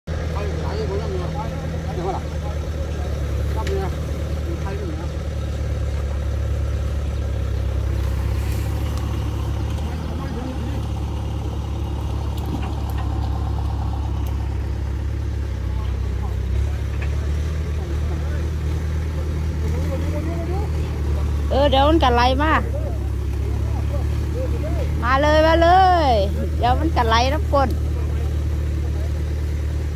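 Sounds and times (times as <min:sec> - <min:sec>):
heavy machine engine rumbling: 0:00.1 - 0:29.9.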